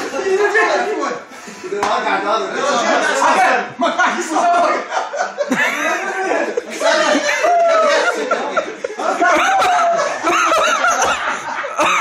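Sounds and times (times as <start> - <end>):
men laughing and calling out: 2.3 - 12.0.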